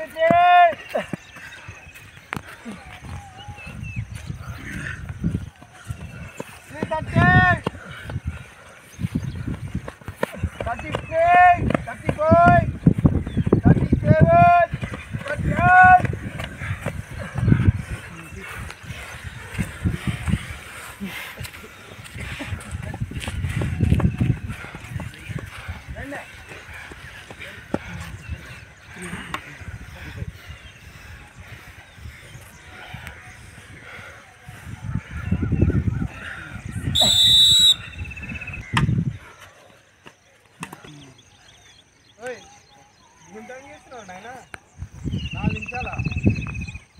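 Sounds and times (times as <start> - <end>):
running footsteps on grass: 0.0 - 46.9
whistle blast: 36.9 - 38.6.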